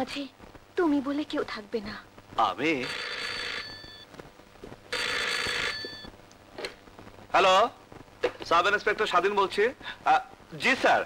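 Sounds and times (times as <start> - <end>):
desk telephone ringing: 2.8 - 4.0, 4.9 - 6.1.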